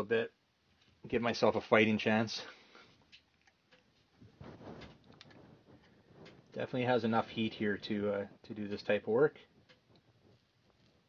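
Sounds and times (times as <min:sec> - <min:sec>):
handling clicks and rustles: 0:03.0 - 0:11.0.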